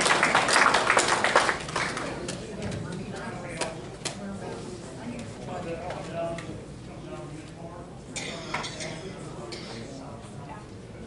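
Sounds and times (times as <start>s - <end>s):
faint voices: 1.8s - 11.0s.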